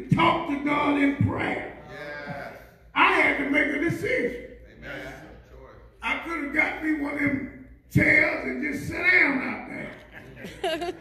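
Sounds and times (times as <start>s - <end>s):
man preaching into a microphone: 0.0s - 5.4s, 6.0s - 10.1s.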